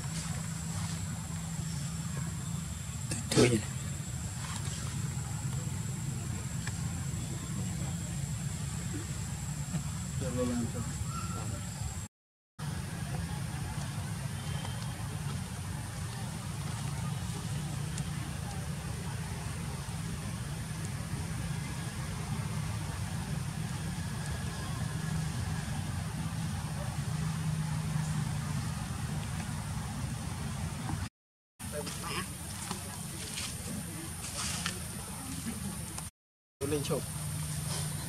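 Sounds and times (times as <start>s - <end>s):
low outdoor background rumble: 0.0s - 31.1s.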